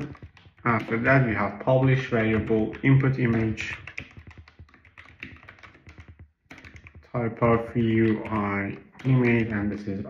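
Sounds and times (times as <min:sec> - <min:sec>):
typing on a computer keyboard: 0:00.0 - 0:10.0.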